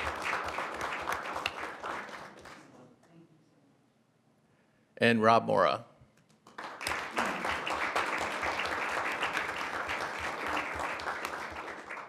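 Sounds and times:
crowd applauding: 0:00.0 - 0:02.7, 0:06.5 - 0:12.0.

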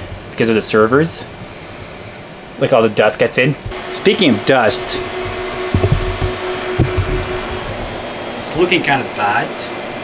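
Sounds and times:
cooling fans whirring: 0:00.0 - 0:10.0
low handling thumps: 0:04.7 - 0:08.2.

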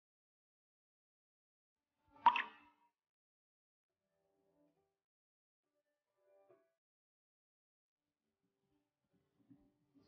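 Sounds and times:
short plop: 0:02.3 - 0:02.6.

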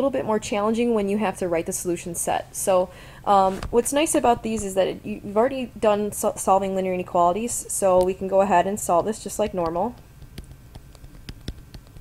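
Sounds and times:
stylus tapping on tablet: 0:09.4 - 0:12.0.

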